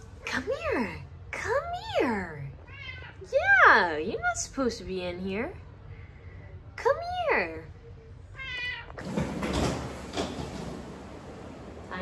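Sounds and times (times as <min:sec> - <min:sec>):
cat meowing: 0:02.6 - 0:03.2, 0:08.4 - 0:09.0.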